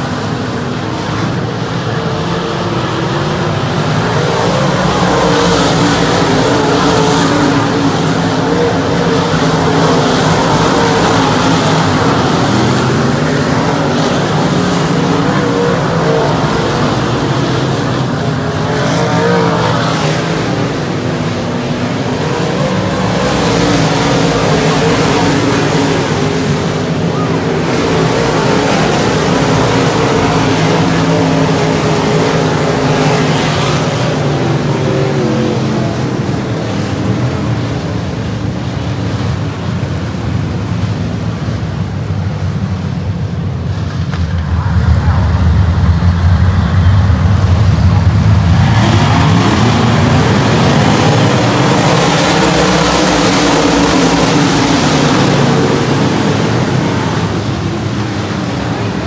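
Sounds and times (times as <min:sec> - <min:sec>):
race car engines: 0:00.0 - 0:59.0.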